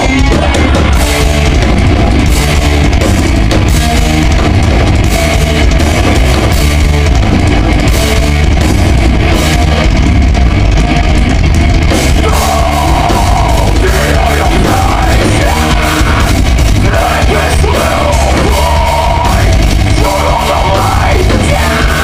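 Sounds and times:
bass guitar: 0.0 - 22.0
distorted electric guitars: 0.0 - 22.0
fast drumming on drum kit: 0.0 - 22.0.

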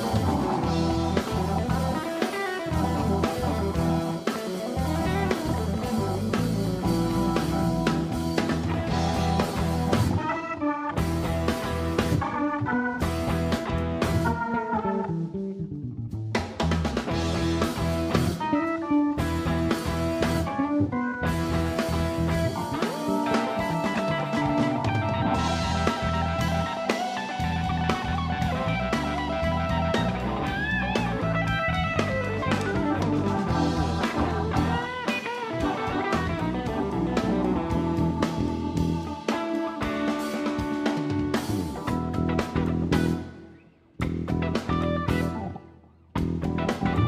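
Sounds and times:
bass guitar: 0.0 - 47.0
drum kit: 0.0 - 47.0
electric guitar: 0.0 - 47.0.

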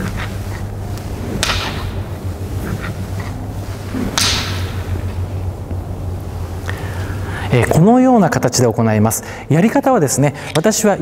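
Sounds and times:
golf clubs swishing through air: 0.0 - 7.2.

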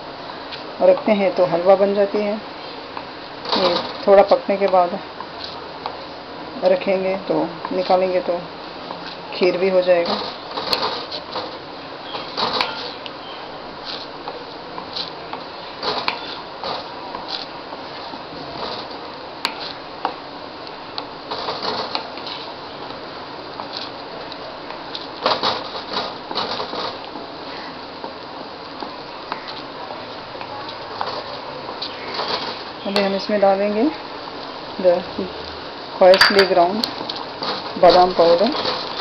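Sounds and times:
steady hiss: 0.0 - 39.0
spoon scraping and knocking pan: 36.2 - 36.7.

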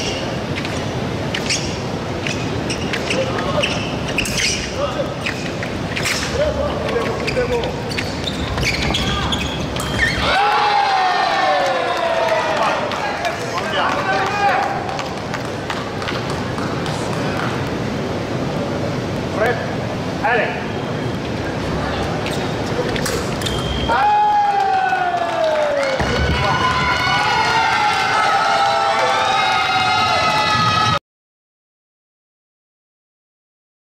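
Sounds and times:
many voices: 3.0 - 23.9
loud shouts: 10.1 - 13.2, 23.8 - 31.0.

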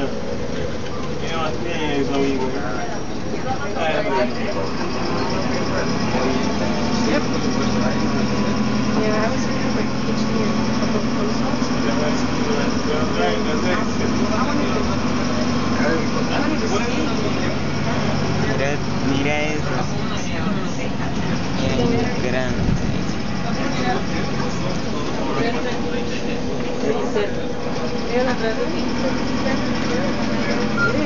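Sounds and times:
bus engine humming: 0.0 - 31.0
passengers chatting: 0.0 - 31.0.

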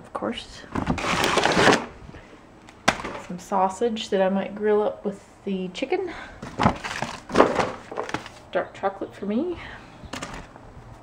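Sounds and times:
plastic bag crinkling: 0.9 - 1.9, 6.5 - 8.5.

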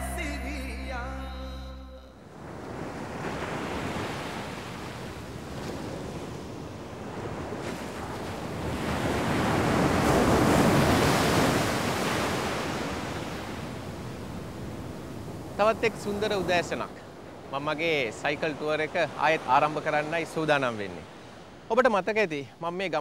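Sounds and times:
sea surf breaking: 2.2 - 21.7.

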